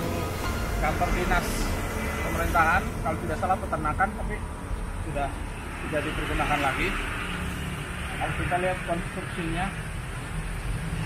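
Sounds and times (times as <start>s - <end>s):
traffic engine rumble: 0.0s - 11.0s.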